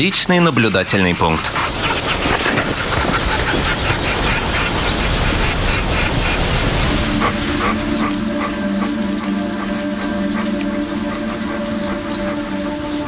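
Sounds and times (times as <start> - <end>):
scraping and rustling on tree: 0.0 - 13.0
held low music notes: 4.0 - 13.0.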